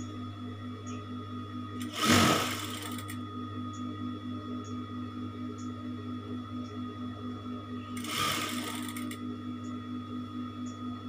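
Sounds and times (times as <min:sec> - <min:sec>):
steady electric hum: 0:00.0 - 0:11.0
sewing machine stitching: 0:01.8 - 0:03.1, 0:08.0 - 0:09.2.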